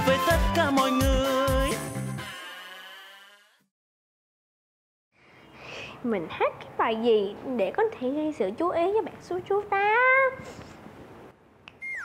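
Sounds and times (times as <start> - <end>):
sliding electronic comedy tone: 2.1 - 3.6.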